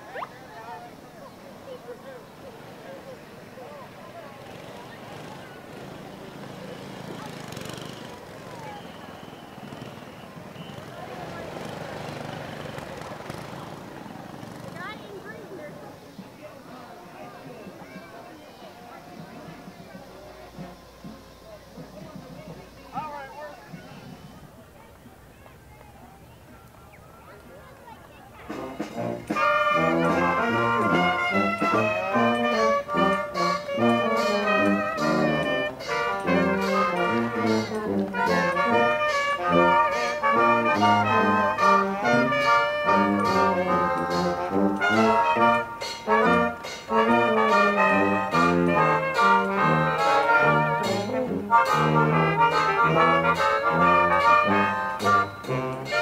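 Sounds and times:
brass jazz band playing: 18.6s - 24.4s, 28.4s - 56.0s
tuba bass line: 28.5s - 56.0s.

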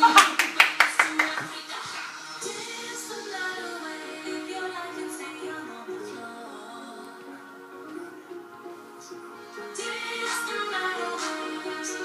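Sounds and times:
music playing: 0.0s - 12.0s
quick hand claps: 0.2s - 2.2s.

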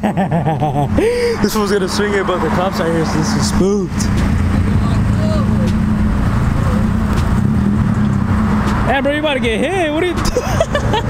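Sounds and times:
car engine rumbling at low revs: 0.0s - 11.0s.

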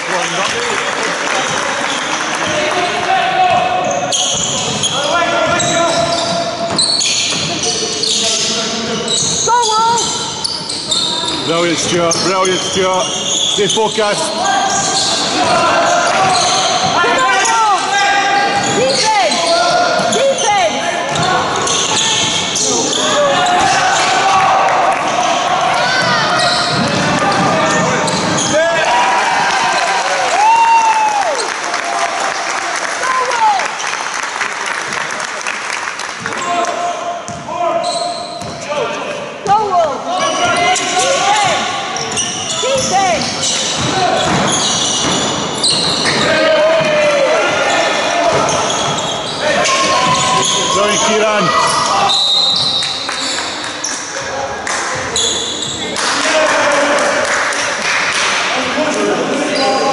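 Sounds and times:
shoes squeaking: 3.8s - 24.2s, 25.1s - 28.6s, 39.4s - 54.3s
people calling out: 14.2s - 29.3s, 45.6s - 52.8s
basketball bouncing: 26.0s - 28.5s, 37.3s - 37.5s, 38.4s - 38.6s, 42.7s - 46.9s.

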